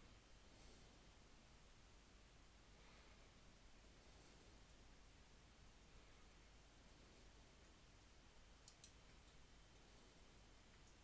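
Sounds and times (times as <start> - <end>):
faint clicks: 8.6 - 10.0.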